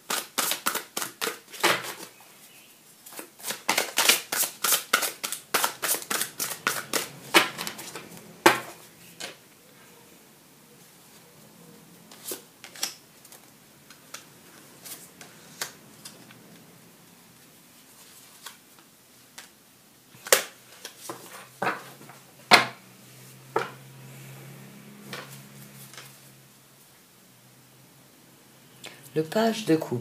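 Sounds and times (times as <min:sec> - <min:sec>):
cards being shuffled: 0:00.1 - 0:02.1, 0:03.0 - 0:09.4, 0:12.1 - 0:16.3, 0:17.9 - 0:19.5.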